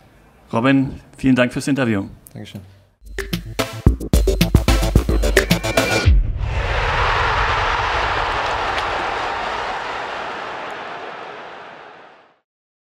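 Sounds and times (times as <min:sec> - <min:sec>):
rushing noise effect: 0:05.9 - 0:09.8.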